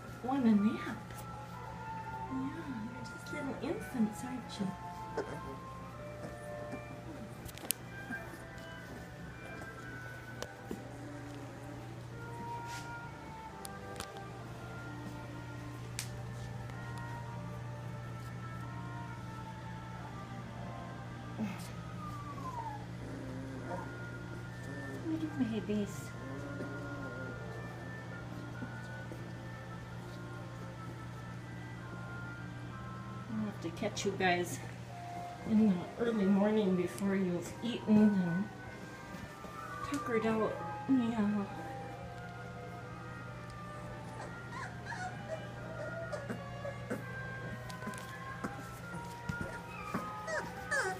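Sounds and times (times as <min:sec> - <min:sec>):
low background hum: 0:00.0 - 0:50.9
puppy whining: 0:04.6 - 0:15.6, 0:21.3 - 0:30.5, 0:35.2 - 0:50.9
puppy squeaks: 0:44.2 - 0:45.4, 0:49.4 - 0:50.9.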